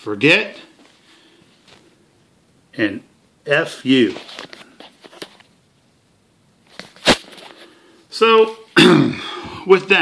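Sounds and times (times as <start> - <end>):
camera handling rustle: 4.2 - 5.5, 6.7 - 7.8.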